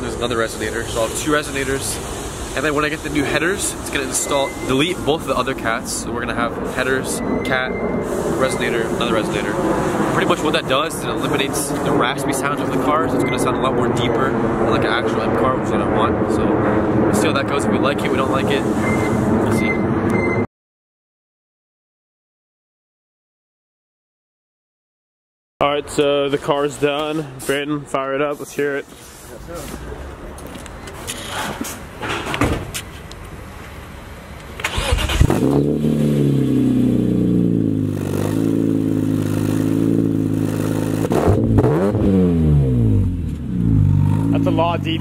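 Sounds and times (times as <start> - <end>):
low outdoor rumble: 0.0 - 20.0, 42.6 - 45.0
engine revving: 0.2 - 20.2, 34.6 - 45.0
car engine starting and idling: 33.9 - 45.0
person speaking: 44.3 - 45.0.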